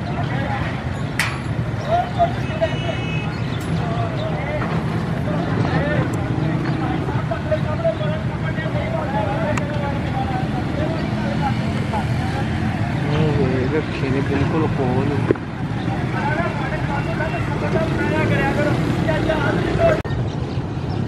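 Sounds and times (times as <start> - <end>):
people talking: 0.0 - 20.1
low rumble of vehicle engines: 0.0 - 21.0.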